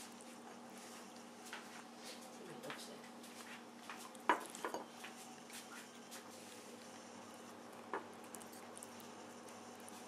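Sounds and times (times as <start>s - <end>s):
cat eating: 3.4s - 10.0s.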